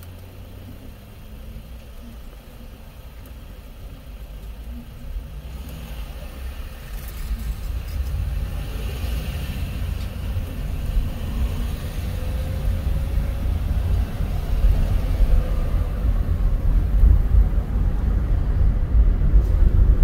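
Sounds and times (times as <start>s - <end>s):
car engine: 0.0s - 20.0s
road noise: 0.0s - 20.0s.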